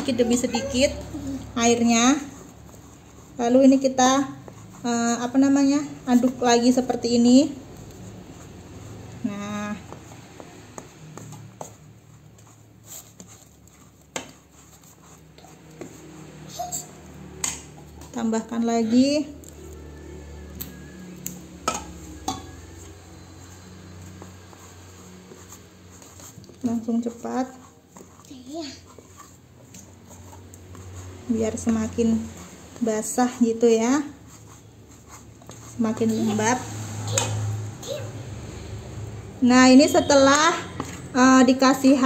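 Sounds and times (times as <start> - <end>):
paddle stirring damp flour: 0.0 - 42.0
spatula scraping a bowl: 0.0 - 42.0.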